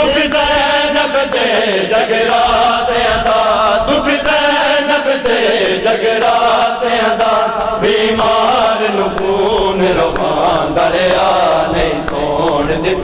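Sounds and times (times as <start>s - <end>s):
men chanting a lament: 0.0s - 13.0s.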